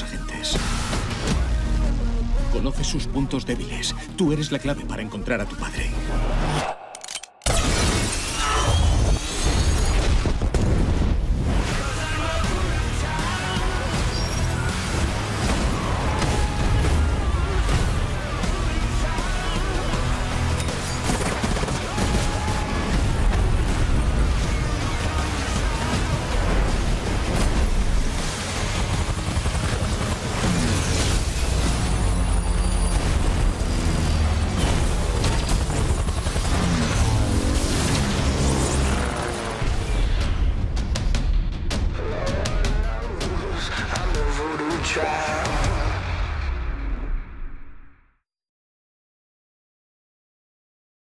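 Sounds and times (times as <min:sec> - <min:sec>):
helicopter rotor beating: 0:22.7 - 0:39.9.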